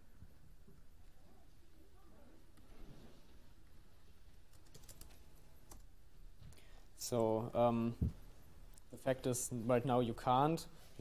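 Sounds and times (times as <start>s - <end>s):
keyboard typing: 4.5s - 5.9s.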